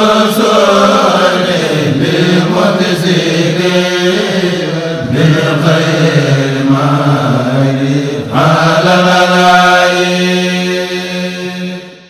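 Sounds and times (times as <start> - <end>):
person chanting a long note: 0.0 - 12.0.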